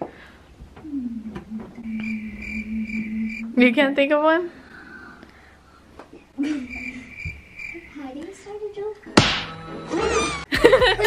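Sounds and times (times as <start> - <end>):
girl humming into toy microphone: 0.8 - 3.4
thin high whine: 1.0 - 3.8, 6.4 - 8.0.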